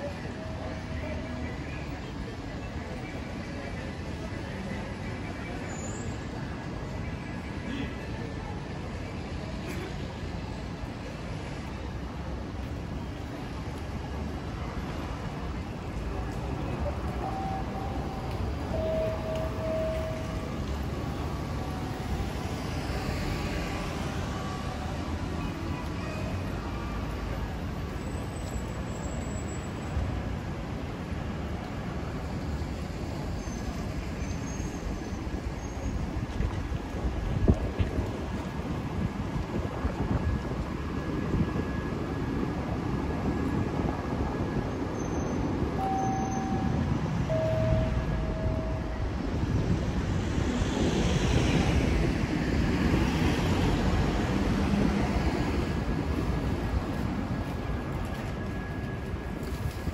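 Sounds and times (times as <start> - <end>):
road traffic rumble: 0.0 - 59.9
vehicles passing: 0.0 - 59.9
short electronic beeps: 17.2 - 20.4, 45.8 - 49.0.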